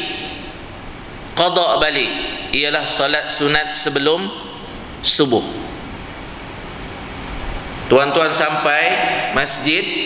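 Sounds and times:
man speaking: 1.4 - 5.8, 7.9 - 10.0.

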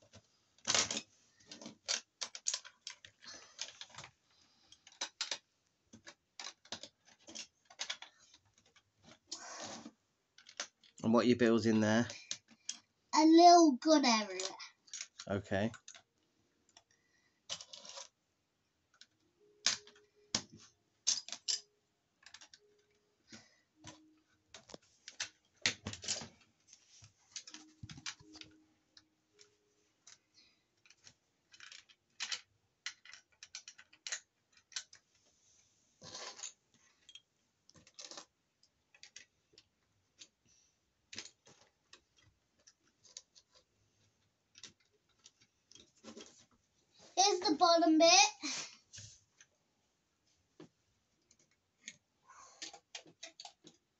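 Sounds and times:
plastic bricks clicking and clattering: 0.1 - 11.0, 11.6 - 12.9, 14.4 - 18.2, 18.9 - 23.0, 30.8 - 35.2, 36.0 - 40.4, 41.0 - 43.7, 51.2 - 53.9.

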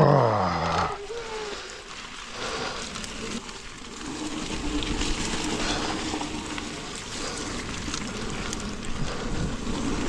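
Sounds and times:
man's wordless exclamation: 0.0 - 1.0
bike tyres on dirt trail: 0.0 - 10.0.

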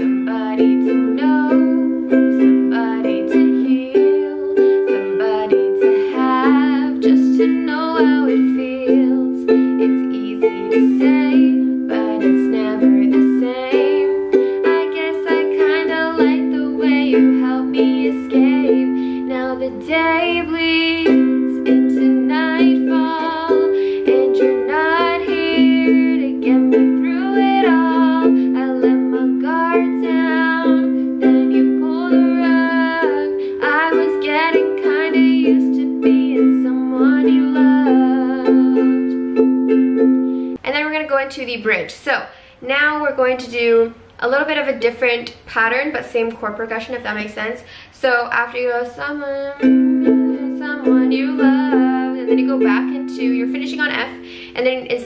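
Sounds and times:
woman singing ballad: 0.0 - 39.2, 48.7 - 55.0
ukulele strumming: 0.0 - 40.6, 49.0 - 55.0.

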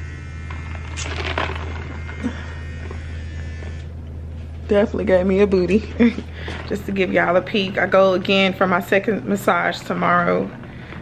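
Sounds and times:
electric shaver buzzing: 0.0 - 10.6.

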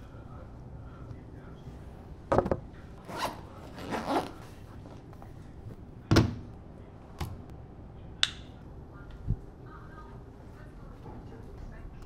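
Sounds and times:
bag zipper rasping: 3.0 - 4.5.

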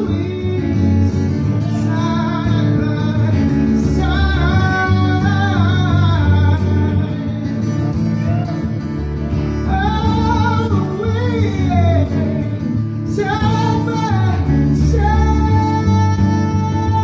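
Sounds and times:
man singing: 0.0 - 8.4, 9.0 - 17.0
acoustic guitars playing: 0.0 - 17.0.

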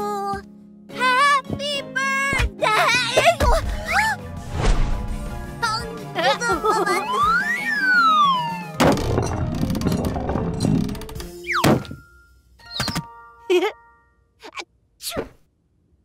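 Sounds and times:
rumble: 3.5 - 5.9
swooping whooshes with tones: 3.7 - 6.0
cartoon falling whistle: 7.1 - 8.8.

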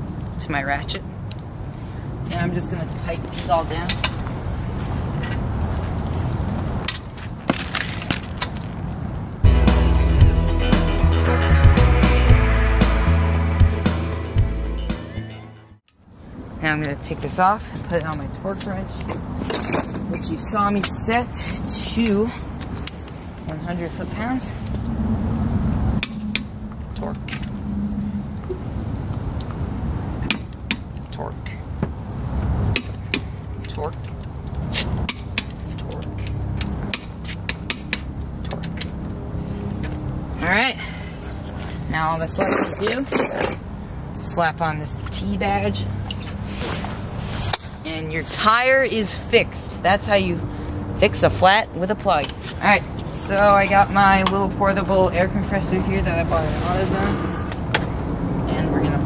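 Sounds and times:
background music: 9.4 - 15.8
steady low rumble: 19.8 - 31.2.

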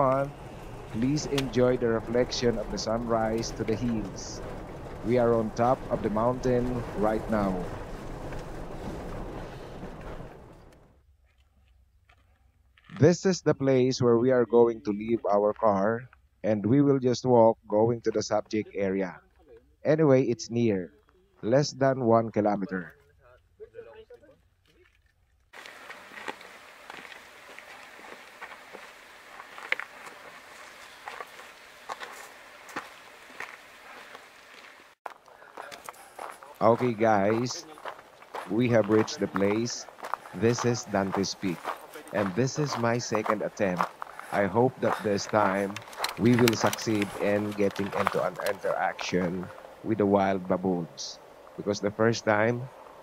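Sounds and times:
steady hiss: 0.0 - 10.5, 38.5 - 53.0
footsteps on gravel: 0.0 - 10.7, 24.6 - 49.7
car driving on dirt road: 0.0 - 11.0.

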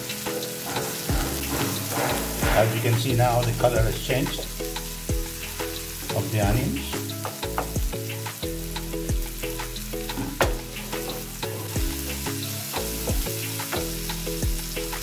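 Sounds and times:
background music with bass line: 0.0 - 15.0
onions sizzling in hot oil: 0.0 - 15.0
wooden spatula scraping pan: 0.3 - 3.2.

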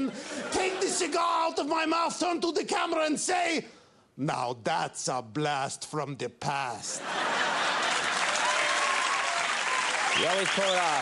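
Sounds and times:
audience laughing: 0.0 - 1.3, 7.0 - 8.5
audience applauding: 7.6 - 11.0.

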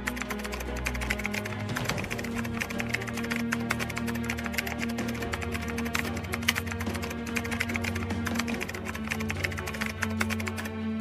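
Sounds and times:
keyboard typing clicks: 0.0 - 10.8
background music with low notes: 0.0 - 11.0.

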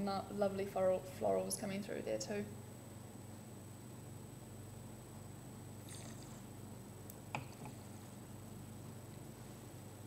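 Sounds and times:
low steady hum: 0.0 - 10.0
slurp of wine sipped: 5.8 - 6.5.

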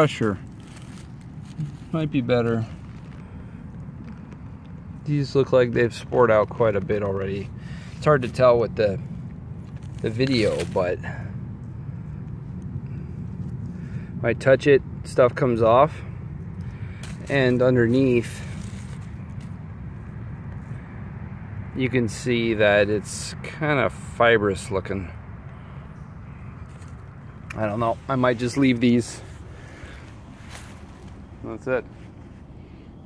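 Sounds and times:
low steady background rumble: 0.0 - 33.0.

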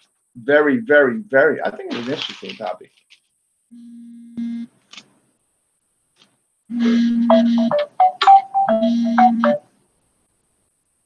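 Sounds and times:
low electronic telephone tone: 3.8 - 4.7, 6.7 - 9.6.

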